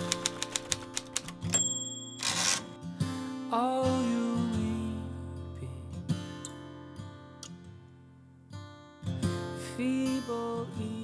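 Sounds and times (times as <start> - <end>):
typewriter keys clacking: 0.0 - 2.7
soft guitar music: 0.0 - 11.0
typewriter bell ding: 0.1 - 2.8.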